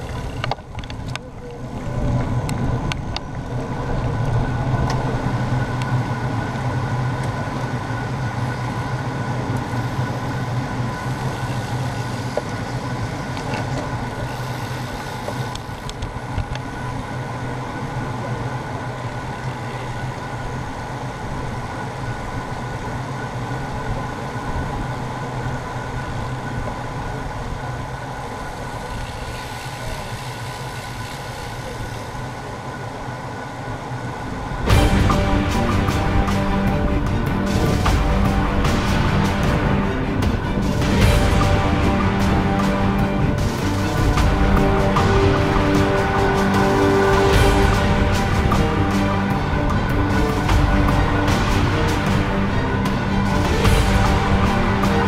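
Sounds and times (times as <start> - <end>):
bicycle tyres on tarmac: 0.0 - 34.7
faint constant whine: 0.0 - 55.0.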